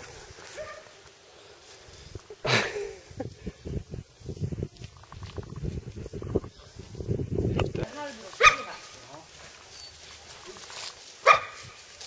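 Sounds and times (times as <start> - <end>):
dog barking: 0.6 - 0.9, 8.4 - 8.8, 11.2 - 11.7.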